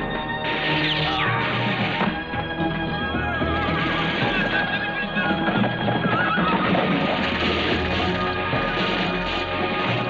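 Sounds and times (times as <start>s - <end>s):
orchestral film music: 0.0s - 10.0s
horses galloping: 2.4s - 10.0s
horse whinnying: 3.2s - 7.3s.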